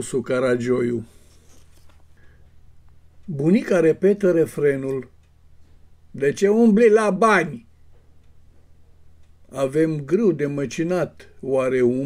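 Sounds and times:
faint clicks and rustles: 0:01.0 - 0:03.3.

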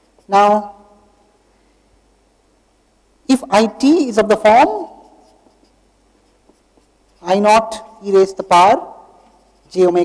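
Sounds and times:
marker scratching on paper: 0:04.6 - 0:07.4, 0:09.3 - 0:09.9.

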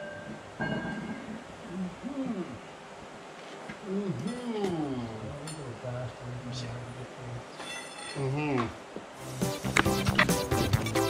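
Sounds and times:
man's wordless vocal sounds: 0:01.7 - 0:02.7, 0:03.8 - 0:05.5
background music with drums: 0:09.2 - 0:11.0.

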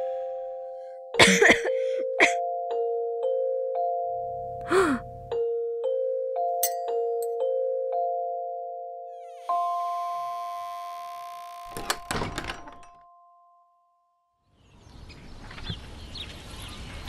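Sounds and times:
door latch clicking and knocking: 0:11.7 - 0:13.0.

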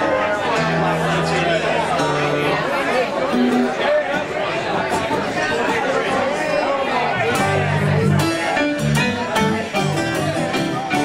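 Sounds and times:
acoustic band playing: 0:00.0 - 0:11.0
crowd talking: 0:00.0 - 0:11.0.

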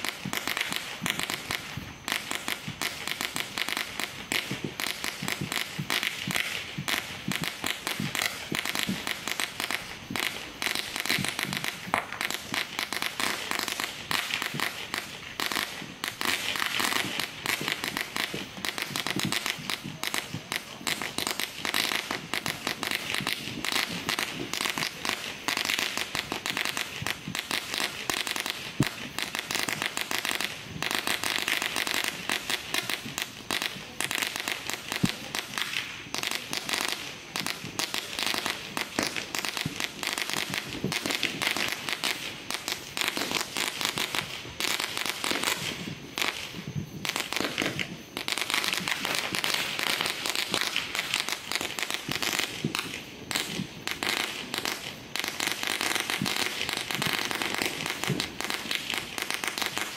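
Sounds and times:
firecrackers crackling: 0:00.0 - 0:59.9
loud firework bangs: 0:00.0 - 0:59.9.

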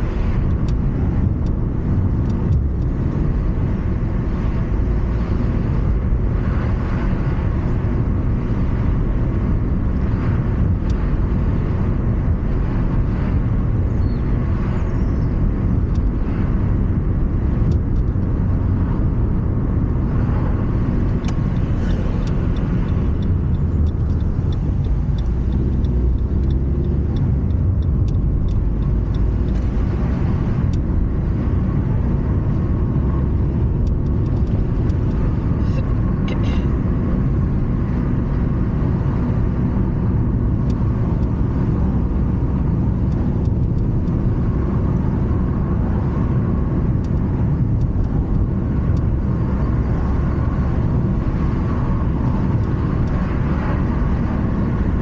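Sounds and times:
car interior driving rumble: 0:00.0 - 0:55.0.

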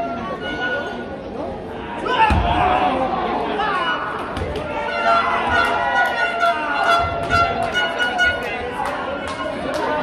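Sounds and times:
spectators shouting and chattering: 0:00.0 - 0:10.0.

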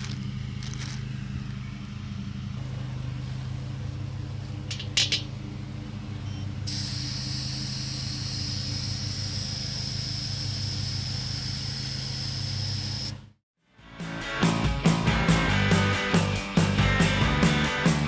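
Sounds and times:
steady low hum: 0:00.0 - 0:13.3
air hissing from valve: 0:06.7 - 0:13.1.

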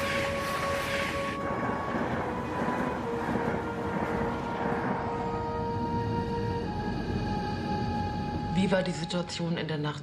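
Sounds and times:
train rolling rumble: 0:00.0 - 0:08.8
background music: 0:00.0 - 0:10.0.

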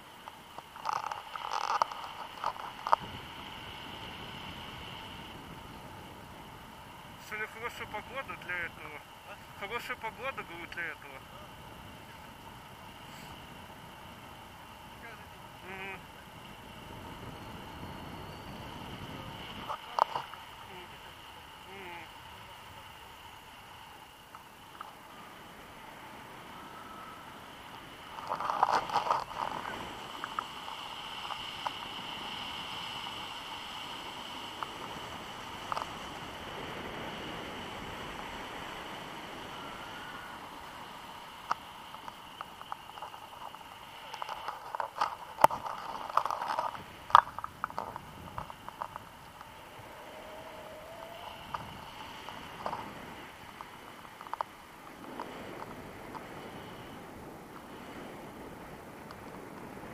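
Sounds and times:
rustling and buffeting: 0:00.0 - 0:14.9, 0:15.5 - 0:59.9
wind rushing over microphone: 0:00.8 - 0:14.3, 0:15.0 - 0:21.0, 0:25.2 - 0:59.9.

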